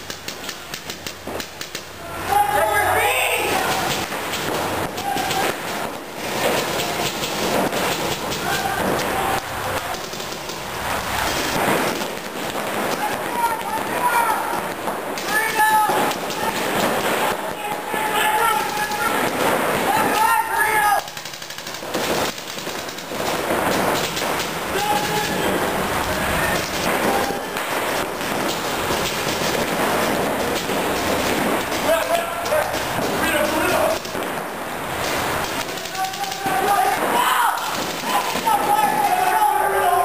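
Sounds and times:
paintball marker fire: 0.0s - 2.0s, 2.6s - 39.8s
paintballs hitting inflatable bunkers: 0.0s - 40.0s
person shouting: 2.0s - 3.9s, 8.4s - 9.6s, 19.9s - 21.1s, 24.7s - 25.6s, 35.9s - 40.0s.

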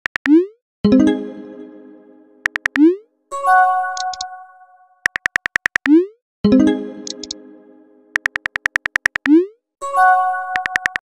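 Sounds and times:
keyboard tap clicks: 2.4s - 2.9s, 4.0s - 4.3s, 5.0s - 6.0s, 7.0s - 7.4s, 8.2s - 9.4s, 10.6s - 11.0s.

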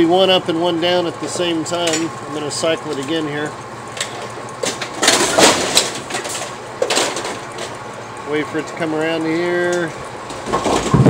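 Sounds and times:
steady machine hum: 0.0s - 11.0s
metallic clatter: 1.8s - 2.2s, 3.9s - 7.8s.

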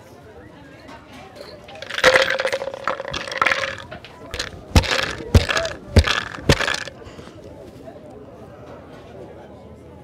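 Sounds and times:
clatter of handling board: 1.8s - 6.9s.

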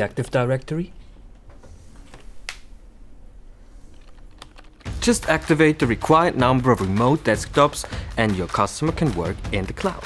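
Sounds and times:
computer keyboard typing: 3.9s - 5.5s.

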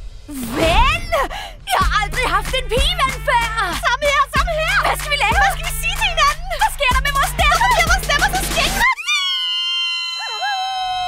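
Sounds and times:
high voices shrieking: 8.8s - 11.0s.

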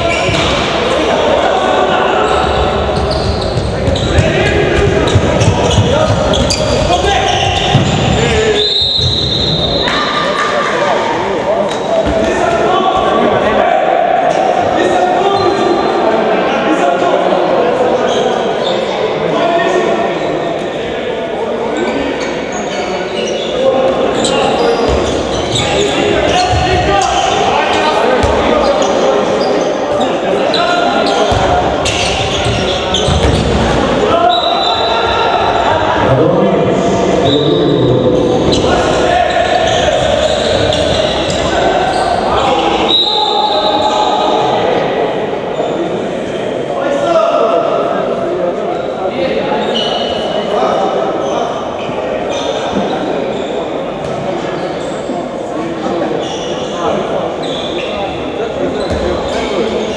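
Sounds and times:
voices talking and calling: 0.0s - 59.9s.

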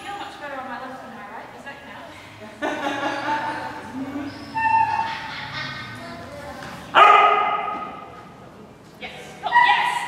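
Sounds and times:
dog barking and yipping: 7.0s - 7.8s.

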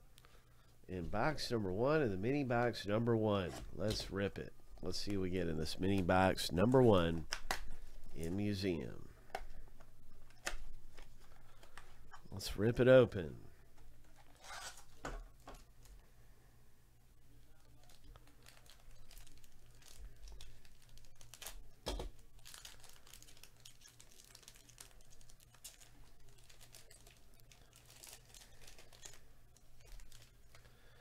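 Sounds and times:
foil wrapper crinkling and tearing: 17.7s - 31.0s
foil ripping: 17.8s - 21.6s, 22.4s - 30.4s.

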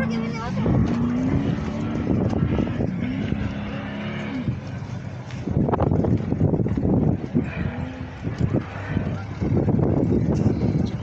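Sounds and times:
race truck engine running hard: 0.0s - 11.0s.

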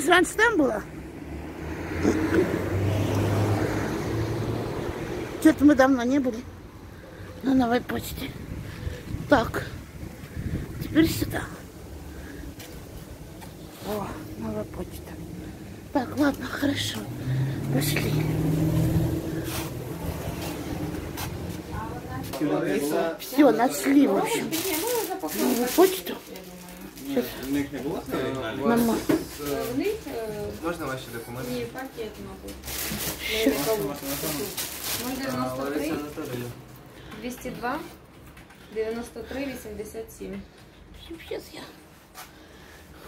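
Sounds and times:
road noise: 0.0s - 43.0s
vehicle engine hum: 0.7s - 22.3s
person's voice: 10.8s - 11.7s, 15.9s - 18.5s
footsteps walking: 19.0s - 22.4s.

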